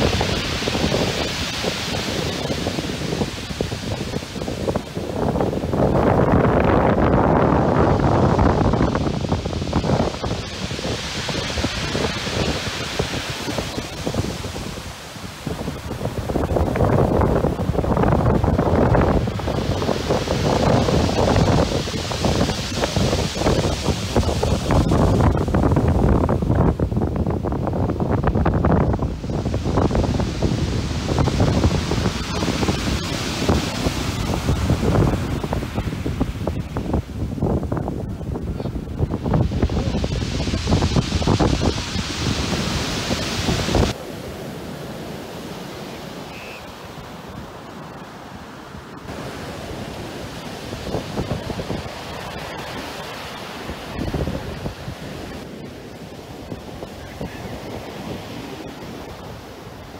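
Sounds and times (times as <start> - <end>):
wind buffeting microphone: 0.0 - 46.3, 48.9 - 59.9
surf washing over shingle: 0.0 - 59.9.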